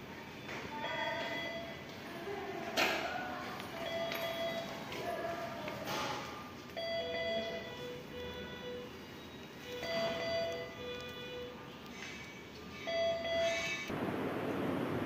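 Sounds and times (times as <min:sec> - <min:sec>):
two-tone electronic chime: 0:12.7 - 0:13.9.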